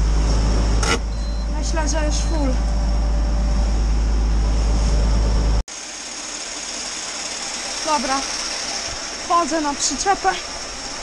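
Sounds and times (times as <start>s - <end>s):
tractor engine drone: 0.0s - 11.0s.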